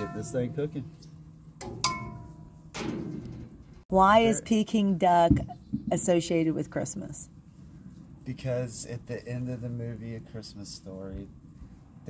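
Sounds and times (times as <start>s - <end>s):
metal ladle clinking on wok: 1.6s - 2.4s.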